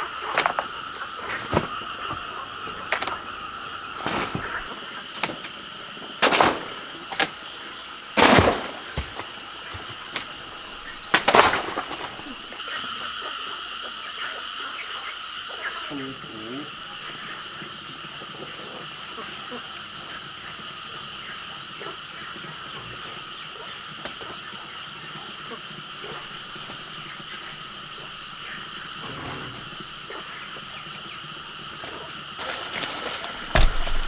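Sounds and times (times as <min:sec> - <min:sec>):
insects calling: 0:00.0 - 0:34.0
loud rough noise bursts: 0:28.4 - 0:30.6.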